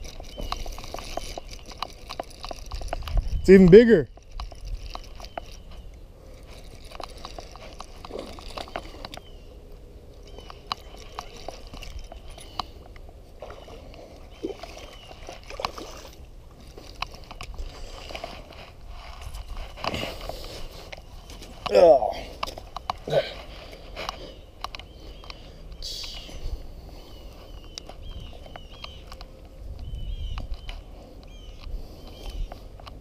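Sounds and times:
water sloshing: 0:10.7 - 0:21.0.

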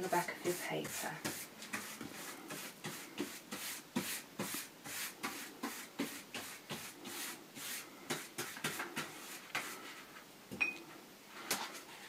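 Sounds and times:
paintbrush stroke on paper: 0:00.0 - 0:10.1, 0:11.7 - 0:12.0.

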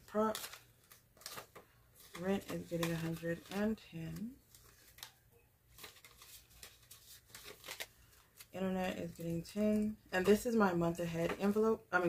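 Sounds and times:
paper money rustling: 0:00.0 - 0:10.4.

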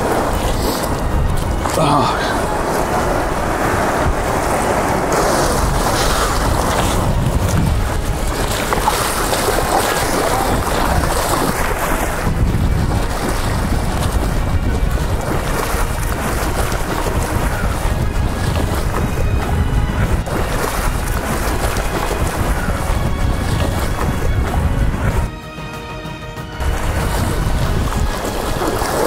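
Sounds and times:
surf sloshing and splashing: 0:00.0 - 0:25.3, 0:26.6 - 0:29.0
wind buffeting microphone: 0:00.0 - 0:25.3, 0:26.6 - 0:29.0
waves washing in: 0:00.0 - 0:29.0.

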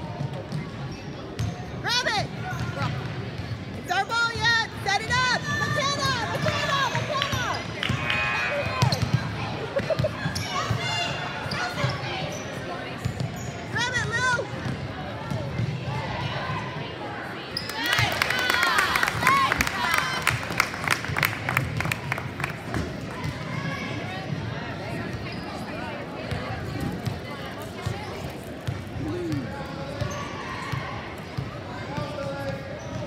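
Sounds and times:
voices echoing in a hall: 0:00.0 - 0:33.0.

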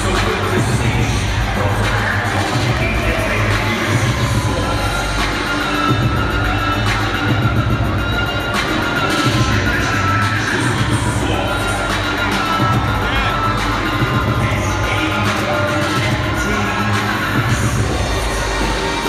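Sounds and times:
crowd cheering and shouting: 0:00.0 - 0:19.0
loud music over speakers: 0:00.0 - 0:19.0.

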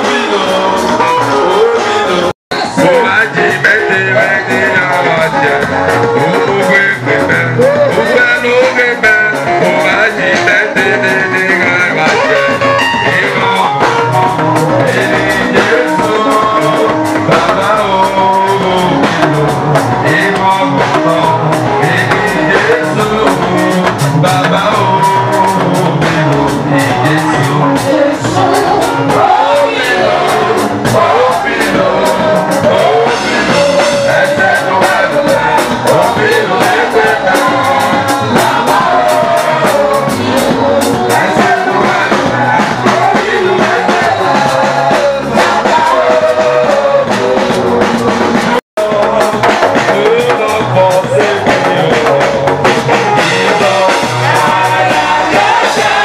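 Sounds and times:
drum kit and cymbals: 0:00.0 - 0:56.0
live band music: 0:00.0 - 0:56.0
man singing into microphone: 0:00.0 - 0:56.0.

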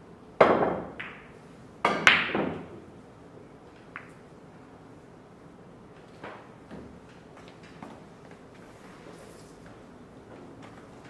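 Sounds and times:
cue striking ball: 0:00.4 - 0:02.8, 0:03.8 - 0:04.2
pool balls knocking: 0:00.4 - 0:02.8, 0:03.8 - 0:04.3.

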